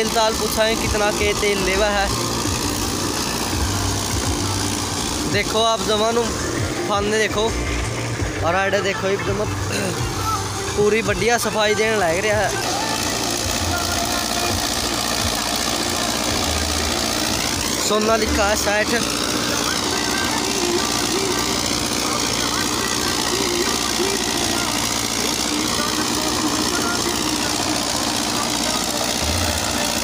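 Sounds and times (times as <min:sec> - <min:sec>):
tractor engine running under load: 0:00.0 - 0:30.0.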